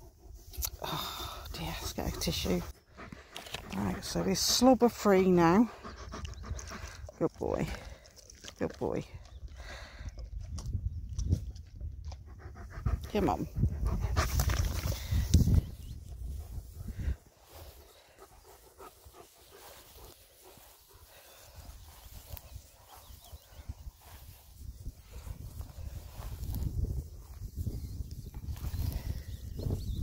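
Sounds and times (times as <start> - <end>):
dog panting: 1.3 - 8.6, 12.1 - 15.3, 16.3 - 23.9
rustles and steps in grass: 1.9 - 5.7, 14.2 - 29.8
wind rumbling on microphone: 9.0 - 30.0.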